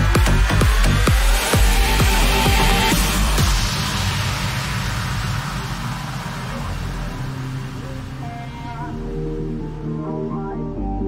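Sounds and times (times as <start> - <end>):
electronic music noisy wash: 0.0 - 11.0
low sustained tones: 1.6 - 11.0.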